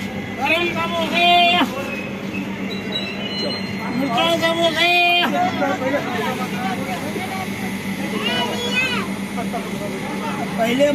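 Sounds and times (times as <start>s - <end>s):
high wheel squeal: 1.0s - 4.9s.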